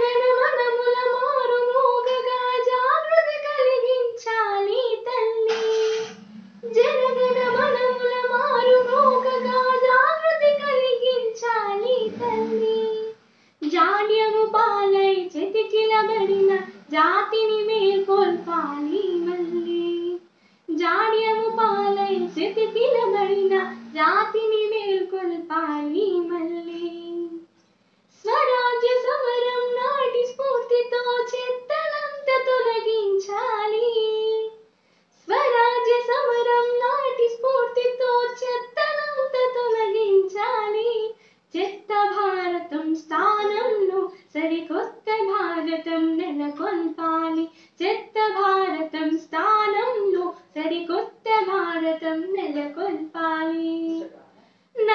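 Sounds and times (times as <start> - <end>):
girl singing: 0.0 - 5.6, 6.6 - 27.5, 28.2 - 34.6, 35.2 - 54.0.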